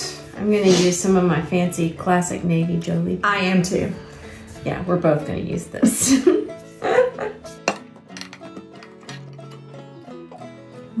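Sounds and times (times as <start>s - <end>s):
background music: 0.0s - 11.0s
paint tin lid prying clicks: 7.6s - 9.7s.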